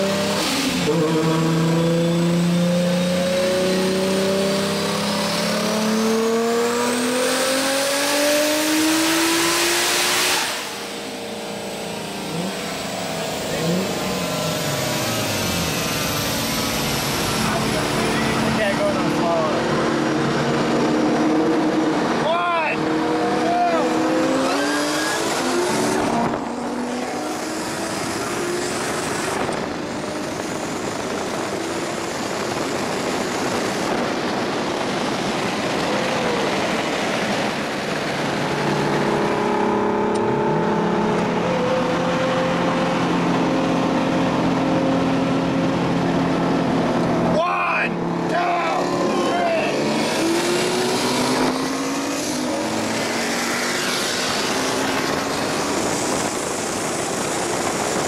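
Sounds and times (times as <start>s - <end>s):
car engine revving hard: 0.0s - 58.0s
engine running at uneven revs: 0.0s - 58.0s.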